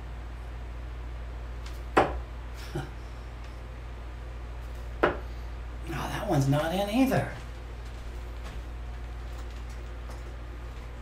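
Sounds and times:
dart striking dartboard: 1.9 - 2.2, 5.0 - 5.2.

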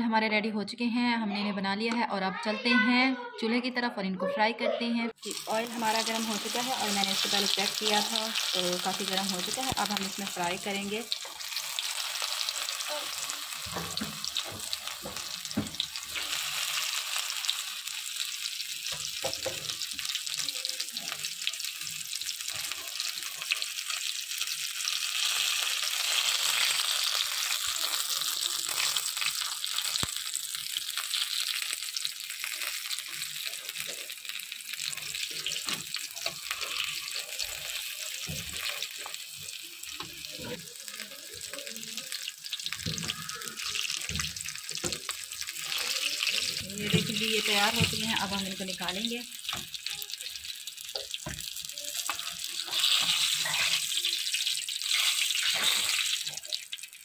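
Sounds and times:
food sizzling in hot oil: 5.2 - 57.0.

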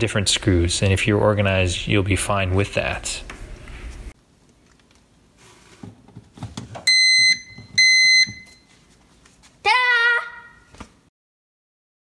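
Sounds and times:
short loud beeps: 6.9 - 8.6.

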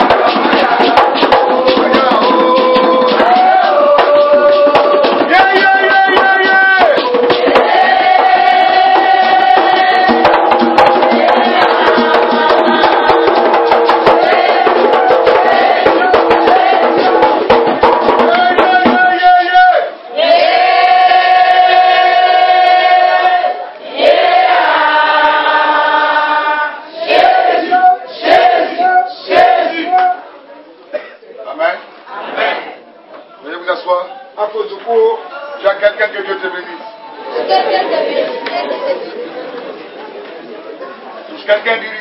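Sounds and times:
group singing long notes: 0.0 - 30.2, 32.0 - 32.9, 36.9 - 39.5.

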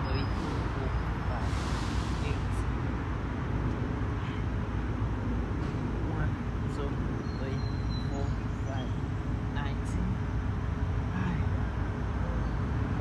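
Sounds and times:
distant road traffic rumble: 0.0 - 13.0.

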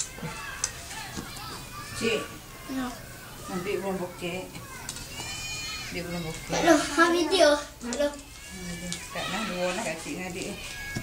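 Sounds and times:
child's voice: 2.6 - 3.6, 6.5 - 8.3.

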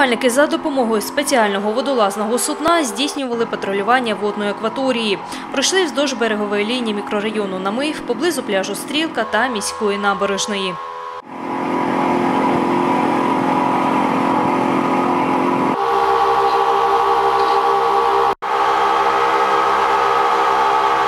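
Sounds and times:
boat engine droning: 0.0 - 21.0.

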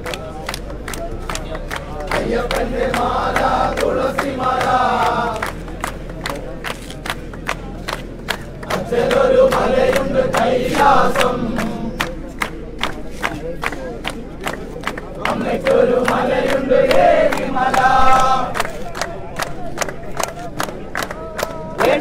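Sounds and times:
crowd chanting: 0.0 - 22.0
steady hand clapping: 0.0 - 22.0.

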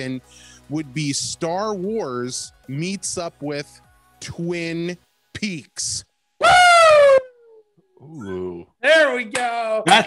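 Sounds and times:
man's falsetto whoop: 6.4 - 7.6.

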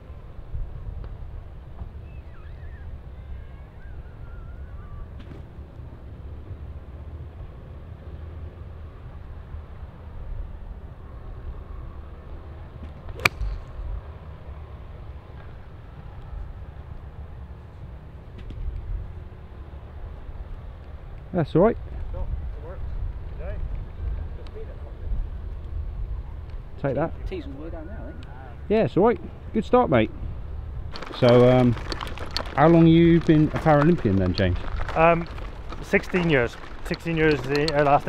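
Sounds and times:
low wind rumble: 0.0 - 38.0
golf club striking ball: 13.1 - 13.8.

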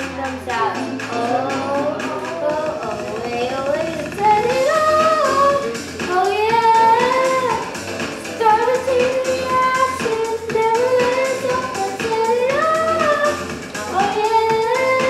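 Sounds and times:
backing music with bass line: 0.0 - 15.0
girl singing into microphone: 0.0 - 15.0.

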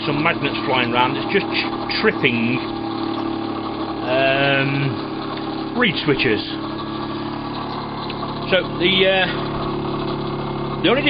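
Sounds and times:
pulse motor humming: 0.0 - 11.0.

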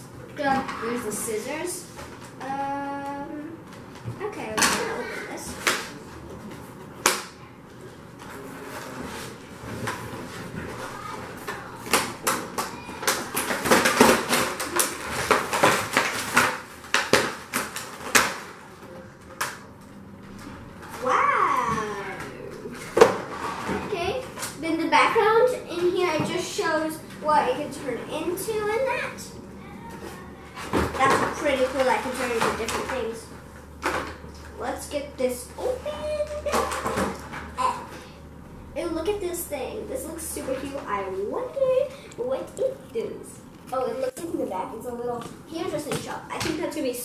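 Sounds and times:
packaging rustling and scraping: 8.2 - 19.4
child exclaiming: 12.7 - 13.1, 21.0 - 22.3.

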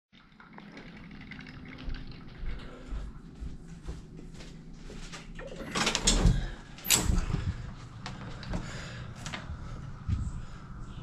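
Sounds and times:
low hum: 0.6 - 11.0.

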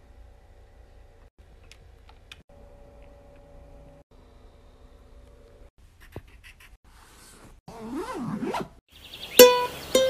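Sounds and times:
marker squeaking on paper: 6.0 - 6.8.

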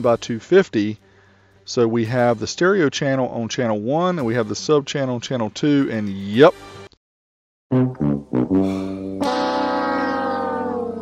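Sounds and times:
sad trombone wah note: 7.7 - 11.0.

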